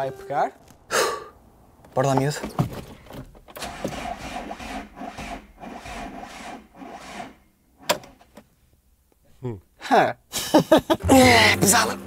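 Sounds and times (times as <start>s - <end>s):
starter motor cranking engine: 3.5s - 8.2s.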